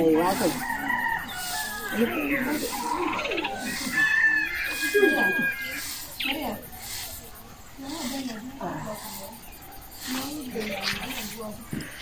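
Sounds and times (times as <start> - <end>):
birds and fowl calling: 0.0 - 12.0
grass broom sweeping dirt: 0.0 - 12.0.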